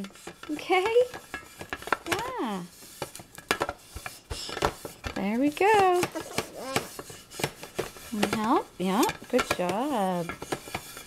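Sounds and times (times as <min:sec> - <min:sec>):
griddle plate knocking on plastic: 0:00.7 - 0:02.3, 0:03.0 - 0:11.0.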